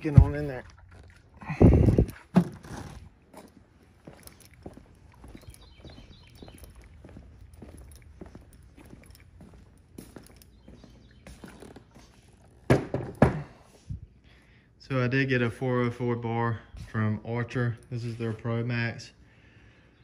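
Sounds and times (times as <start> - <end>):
chainsaw thumping onto workbench: 2.3 - 2.9, 12.7 - 13.5
boot footsteps on concrete: 2.5 - 13.6.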